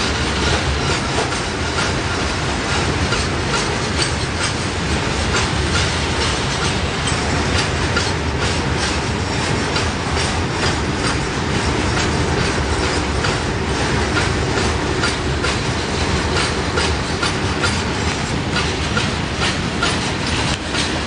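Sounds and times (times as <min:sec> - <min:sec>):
wheels clicking over rail joints: 0:00.0 - 0:21.0.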